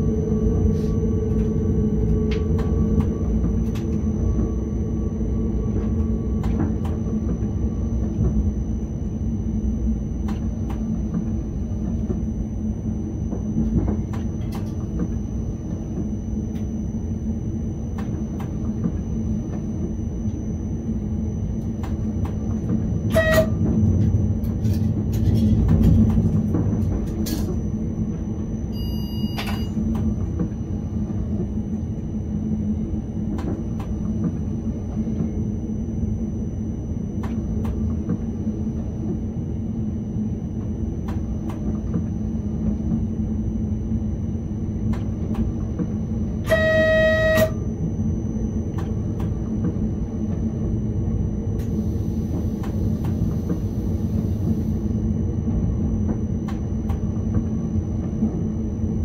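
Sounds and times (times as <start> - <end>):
train rumbling on track: 0.0 - 59.0
train horn: 23.1 - 23.7, 46.4 - 47.7.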